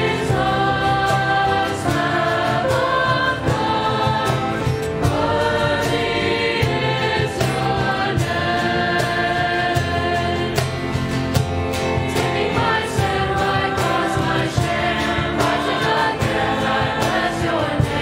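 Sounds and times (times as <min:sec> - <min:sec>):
choir singing: 0:00.0 - 0:18.0
instrumental accompaniment: 0:00.0 - 0:18.0.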